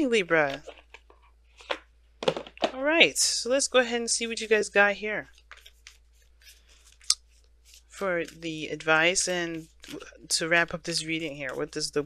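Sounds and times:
cards rustling: 0.3 - 2.8, 5.3 - 11.9.

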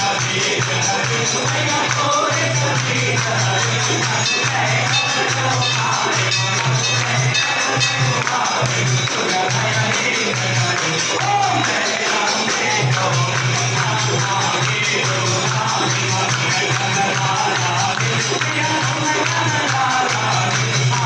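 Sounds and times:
jingling percussion: 0.0 - 21.0.

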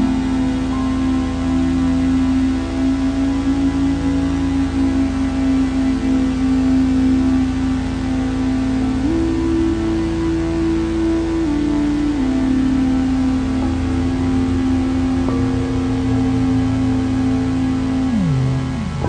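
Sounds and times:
ambient drone music: 0.0 - 19.0.

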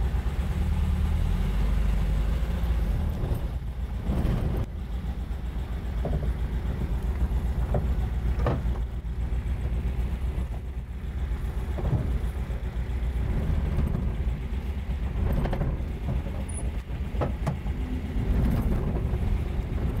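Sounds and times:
van engine rumbling: 0.0 - 20.0.

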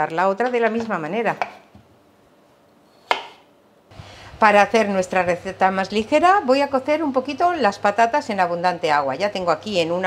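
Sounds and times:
knife chopping on cutting board: 3.0 - 3.5.

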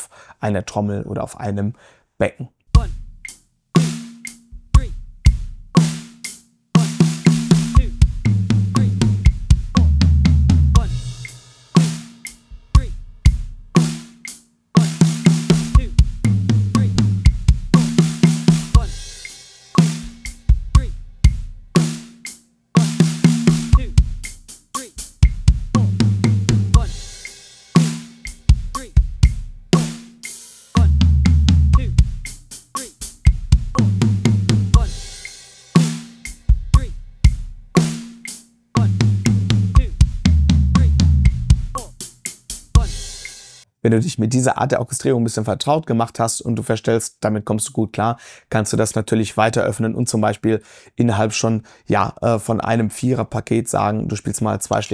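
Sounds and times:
bass drum: 2.7 - 6.2, 6.8 - 14.2, 14.8 - 22.2, 22.8 - 30.2, 30.8 - 38.2, 38.8 - 43.4
acoustic drum kit playing: 2.7 - 43.6.

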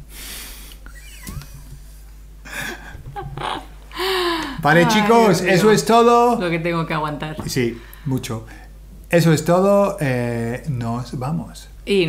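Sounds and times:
long breathy exhale: 0.0 - 0.8
stifled breathy laughter: 0.8 - 4.2.

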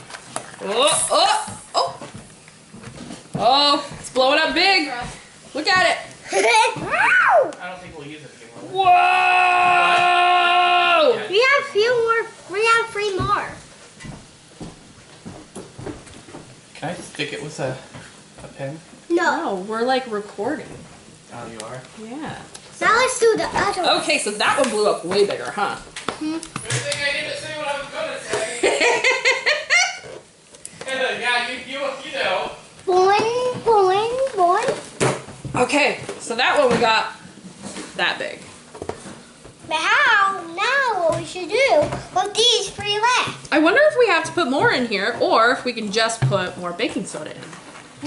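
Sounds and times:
faint handling knocks and rustles: 13.2 - 19.0
people talking: 21.5 - 29.0, 35.6 - 37.1, 39.7 - 47.4.

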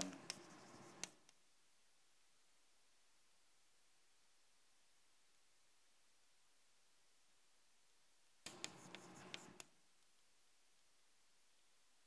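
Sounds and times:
chalk scratching on blackboard: 0.0 - 1.2, 8.5 - 9.7
chalk tapping on board: 0.0 - 1.3, 8.5 - 9.7.

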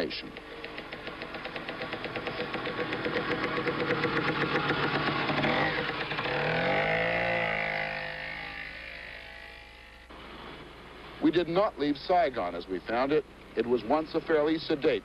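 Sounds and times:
vehicle engine running: 0.0 - 15.0.

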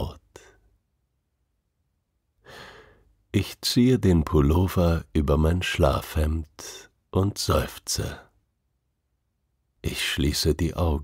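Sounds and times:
man's soft intake of breath: 2.4 - 3.2.

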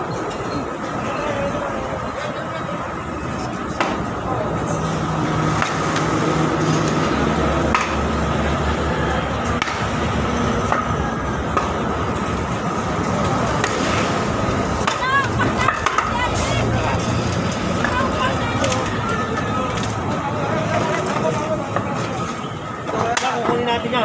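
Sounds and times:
street voices: 0.0 - 24.0.

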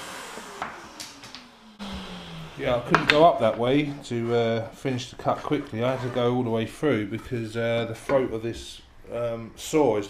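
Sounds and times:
scroll saw running down: 0.0 - 4.0.

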